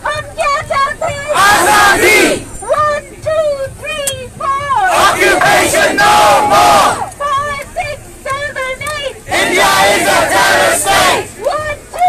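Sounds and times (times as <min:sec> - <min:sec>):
crowd shouting in unison: 0:01.3 - 0:02.5, 0:04.9 - 0:07.1, 0:09.3 - 0:11.3.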